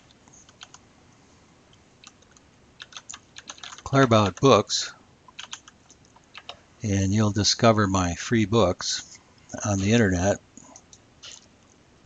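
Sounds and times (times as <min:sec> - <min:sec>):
computer keyboard typing: 0:00.4 - 0:00.8, 0:02.0 - 0:04.6, 0:05.3 - 0:06.6.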